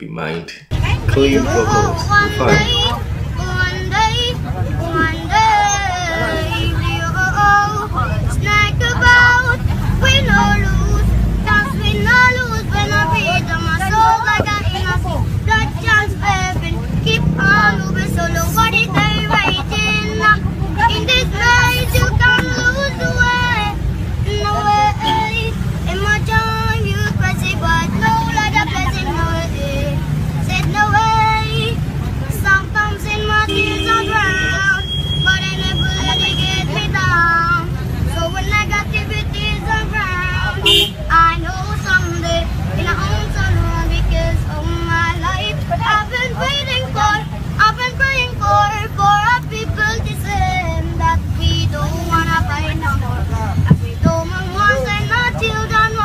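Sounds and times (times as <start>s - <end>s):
vehicle rumble: 0.0s - 56.0s
boy singing: 0.8s - 56.0s.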